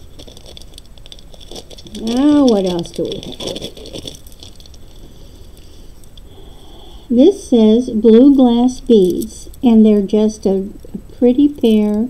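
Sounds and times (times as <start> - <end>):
beads and metal clicking: 0.0 - 6.3, 8.1 - 10.1.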